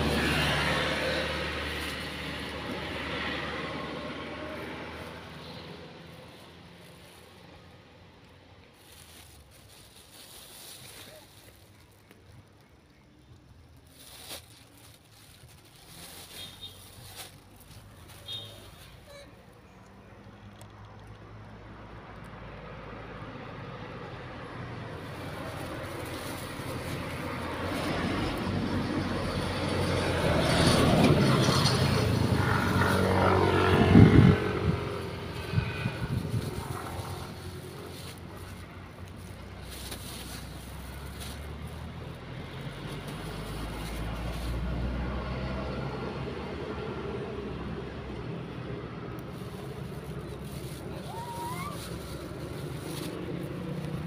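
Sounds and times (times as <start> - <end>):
vehicle passing on road: 0.0 - 54.0.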